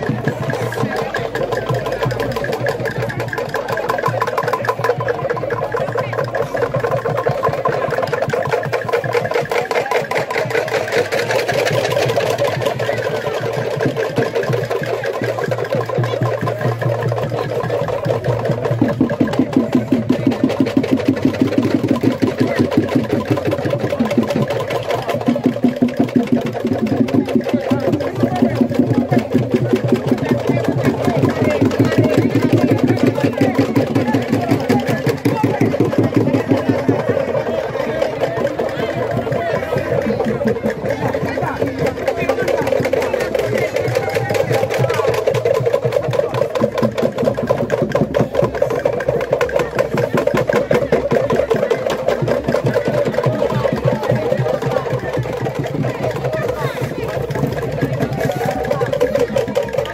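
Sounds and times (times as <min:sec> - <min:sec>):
fast percussive clatter: 0:00.0 - 0:59.9.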